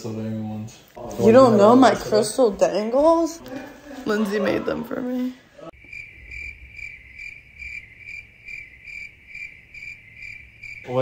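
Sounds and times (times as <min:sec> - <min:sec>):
crickets chirping: 0:05.7 - 0:11.0.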